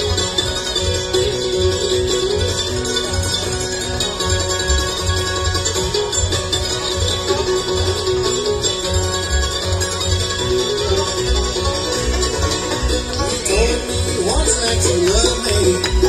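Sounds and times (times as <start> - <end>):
mandolin: 0.0 - 16.0
picked banjo: 0.0 - 16.0
upright bass: 0.0 - 16.0.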